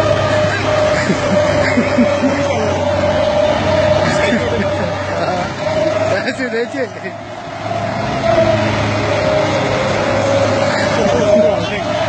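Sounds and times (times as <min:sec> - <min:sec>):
excavator diesel engine running: 0:00.0 - 0:12.0
faint voices: 0:09.2 - 0:12.0.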